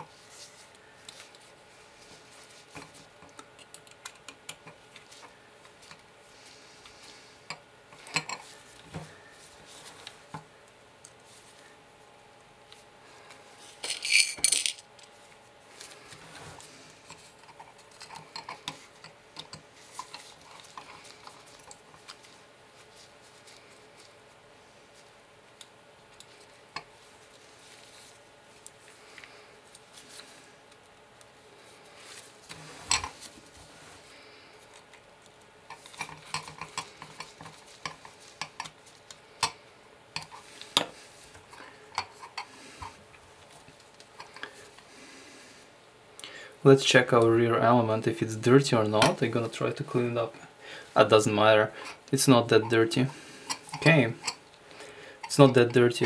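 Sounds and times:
small parts and tools clinking on desk: 7.5 - 8.5, 13.8 - 15.1.

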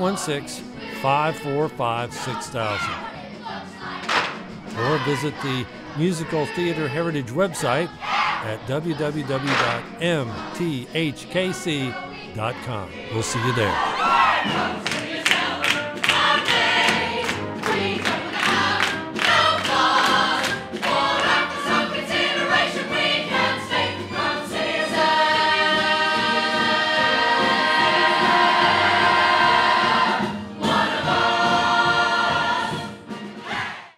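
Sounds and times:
mixed choir singing show tune: 0.0 - 33.9.

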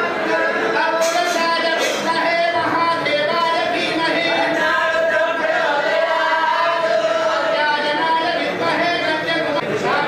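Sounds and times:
group singing long held notes: 0.0 - 10.0
people chattering: 0.0 - 10.0.

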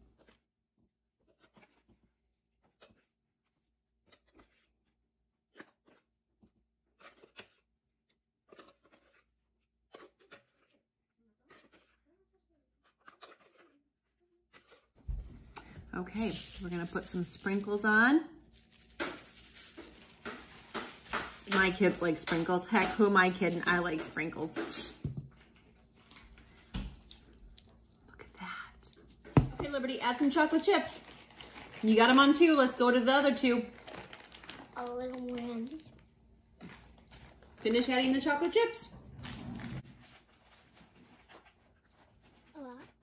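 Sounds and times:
spatula scraping plastic bowl: 8.5 - 25.6.

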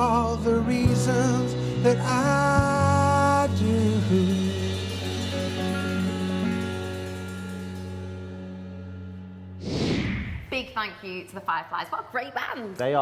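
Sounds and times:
electric guitar chord ringing: 3.8 - 9.5
short whoosh: 9.6 - 10.6.

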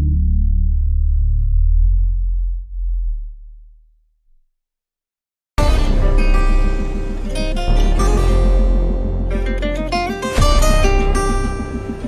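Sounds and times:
deep sub-bass note: 0.0 - 4.0, 5.6 - 12.0.

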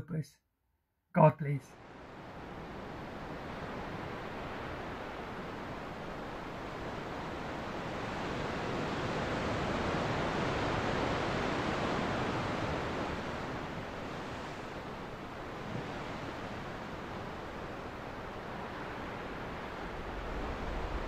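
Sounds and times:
ocean waves breaking: 1.8 - 21.0.

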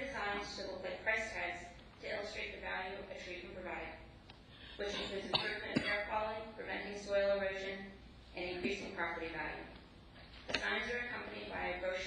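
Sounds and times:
person speaking: 4.7 - 12.0
person coughing: 4.8 - 6.1.

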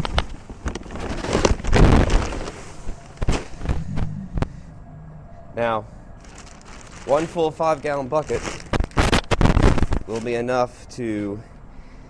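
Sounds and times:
bag rustling: 0.0 - 4.1, 6.2 - 10.5.

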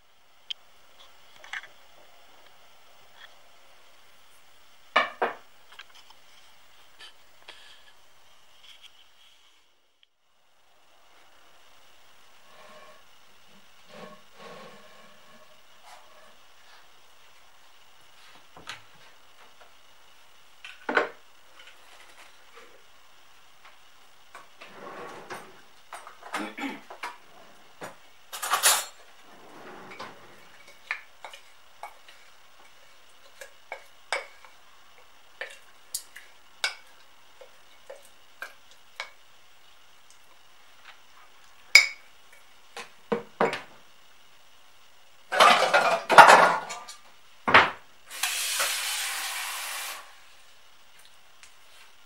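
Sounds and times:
steady hiss: 0.0 - 52.0.

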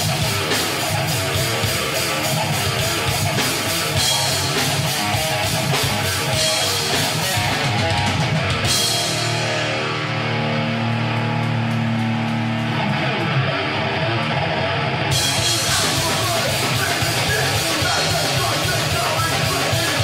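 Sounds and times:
drum kit with cymbal hits: 0.0 - 13.3, 15.1 - 20.0
distorted electric guitars: 0.0 - 20.0.

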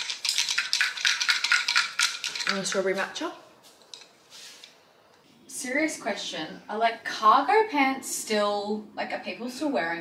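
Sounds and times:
ice clinking against glass: 0.0 - 2.7.

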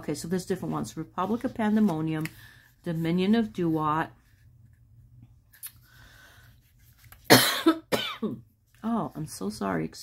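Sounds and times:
woman coughing: 7.3 - 8.4.

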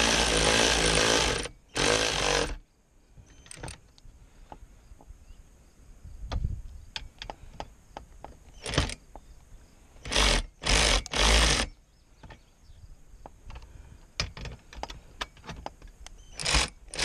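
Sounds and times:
handling clicks and knocks: 13.2 - 16.6.

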